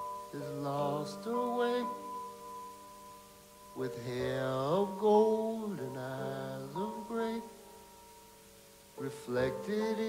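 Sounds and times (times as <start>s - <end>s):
man singing long notes: 0.0s - 2.1s, 3.7s - 7.6s, 9.0s - 10.0s
piano: 0.0s - 10.0s.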